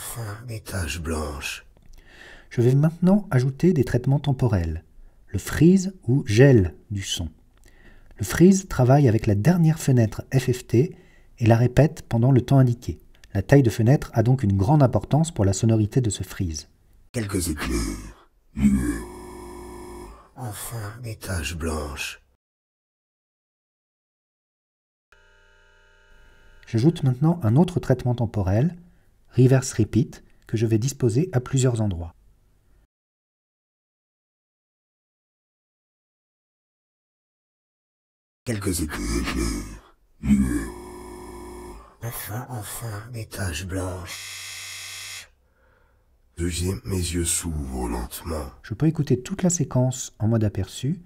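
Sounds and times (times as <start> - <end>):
frozen buzzy voice drone: 0.0 - 0.6, 17.2 - 22.2, 38.5 - 44.3
processed voice syllable: 0.0 - 1.6, 17.2 - 22.2, 38.5 - 44.3, 46.4 - 48.6
brief vocal sound: 17.5 - 21.0, 38.5 - 43.2
steady buzzy frozen tone: 18.6 - 20.3, 38.6 - 42.1.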